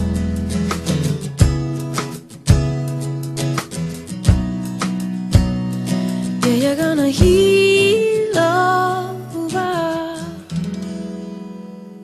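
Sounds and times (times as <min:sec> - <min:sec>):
acoustic guitar chord strummed: 0:00.0 - 0:12.0
woman singing: 0:06.4 - 0:10.6.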